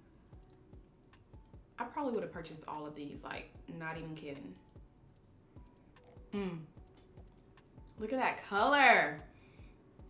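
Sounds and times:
woman speaking: 1.8s - 4.6s, 6.4s - 6.7s, 8.0s - 9.2s.

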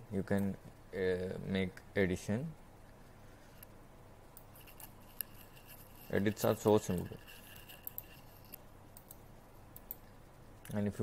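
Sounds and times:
room hiss: 0.0s - 11.0s
computer mouse clicks: 6.4s - 10.8s.

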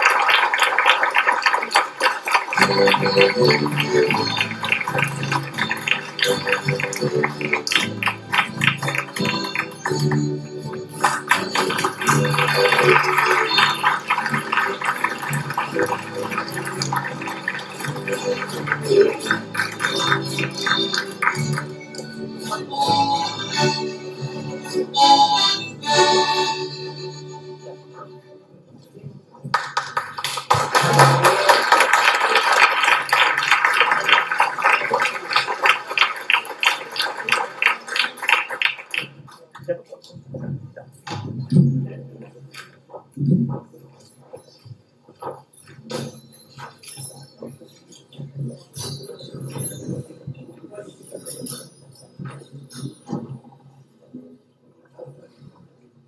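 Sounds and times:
accordion: 2.6s - 17.2s, 17.8s - 27.8s.

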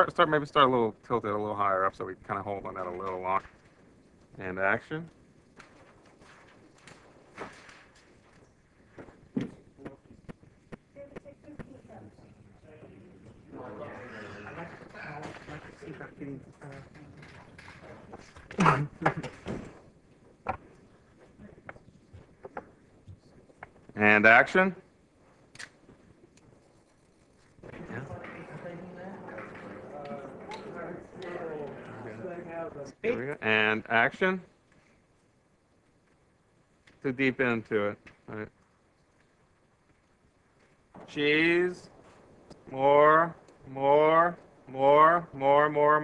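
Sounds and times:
person speaking: 24.0s - 24.8s, 42.6s - 46.0s.

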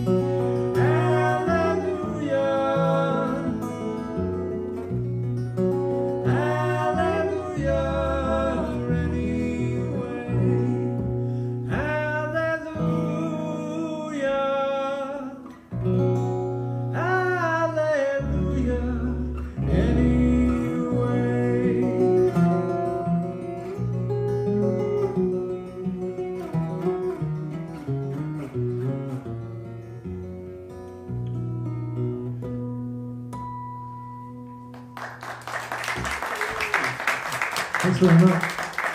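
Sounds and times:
acoustic guitar playing: 0.0s - 38.9s
audience applause: 34.8s - 38.9s.

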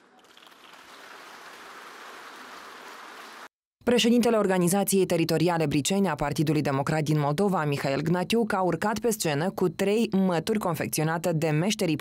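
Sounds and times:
audience applause: 0.0s - 3.5s.

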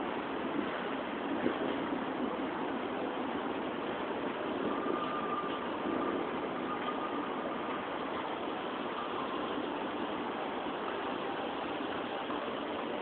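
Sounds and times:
outdoor background hum: 0.0s - 13.0s
faint thin tone: 4.7s - 7.4s.

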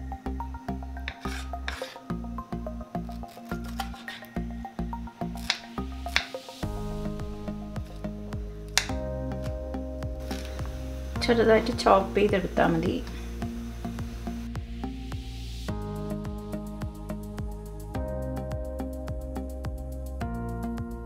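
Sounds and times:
background music: 0.0s - 21.0s
knife cutting pineapple: 1.1s - 2.0s, 3.0s - 4.4s, 5.4s - 6.4s
knife striking wooden board: 1.1s - 2.0s, 3.6s - 4.3s, 5.4s - 6.4s.

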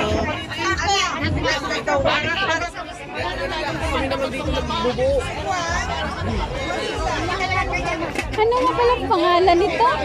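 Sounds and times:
overlapping crowd chatter: 0.0s - 10.0s.

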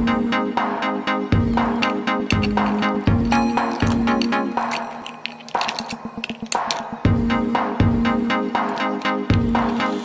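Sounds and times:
electronic music chords: 0.0s - 10.0s
quick percussive clicks: 1.5s - 7.2s.

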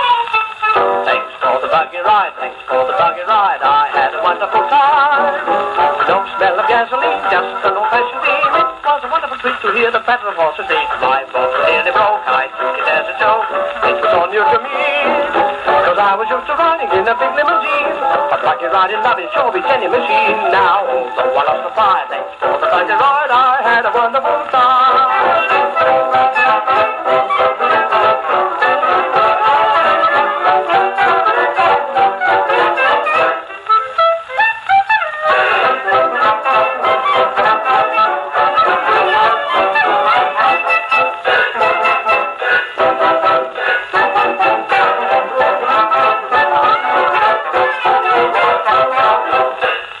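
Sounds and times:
old record of brass dance band: 0.0s - 50.0s.

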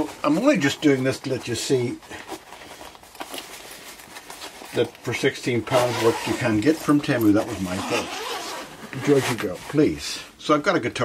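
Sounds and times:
canvas bag rustling: 0.0s - 10.0s.

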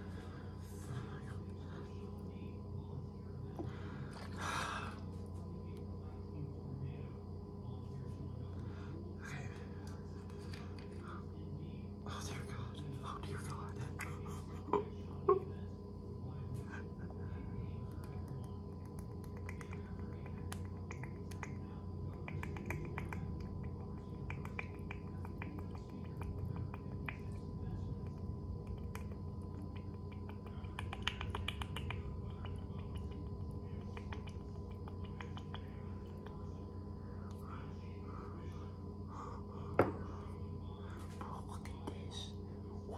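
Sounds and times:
person whispering: 0.0s - 2.4s, 12.0s - 14.8s, 29.7s - 36.5s, 37.2s - 42.9s
low room hum: 0.0s - 42.9s.

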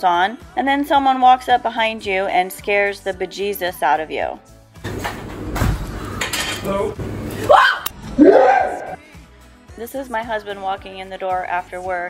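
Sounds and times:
pots pans and cutlery clinking: 4.8s - 6.8s.

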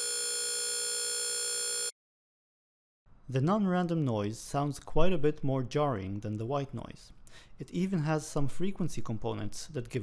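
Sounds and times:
jarring pitched buzz: 0.0s - 1.9s.

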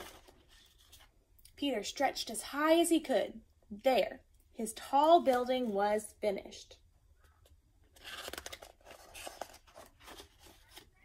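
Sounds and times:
book pages rustling: 0.0s - 1.1s, 7.3s - 11.0s.

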